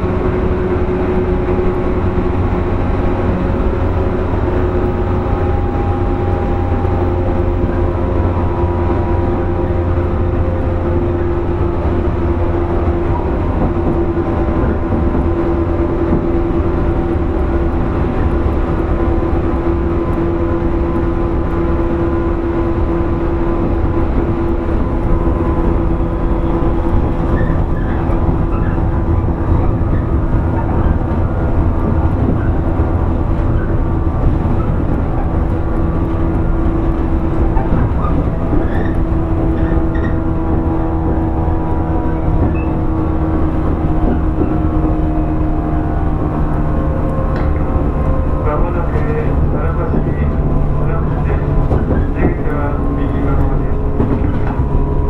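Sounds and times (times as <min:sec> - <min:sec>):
train wheels rumbling: 0:00.0 - 0:55.0.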